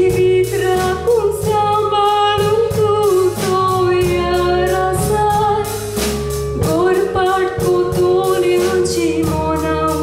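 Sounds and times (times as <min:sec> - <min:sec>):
woman singing: 0:00.0 - 0:06.0, 0:06.6 - 0:10.0
instrumental accompaniment with beat: 0:00.0 - 0:10.0.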